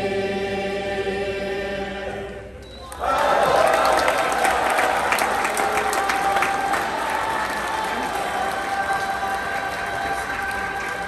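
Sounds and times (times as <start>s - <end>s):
audience applauding: 2.9s - 11.0s.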